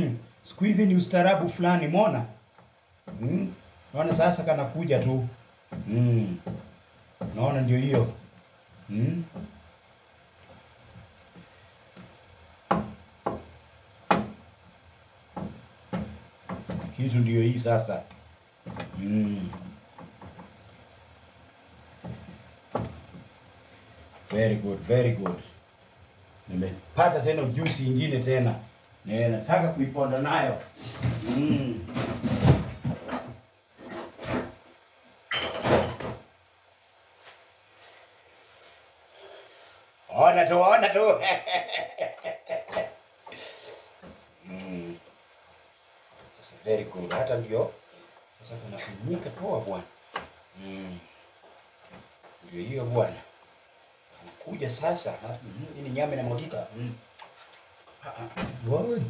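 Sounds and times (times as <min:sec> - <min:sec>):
kitchen knocks and clatter: 0:15.3 - 0:17.0, 0:35.3 - 0:36.2.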